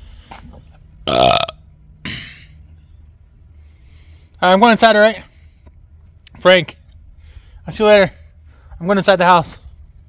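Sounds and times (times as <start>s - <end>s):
man burping: 1.0s - 2.6s.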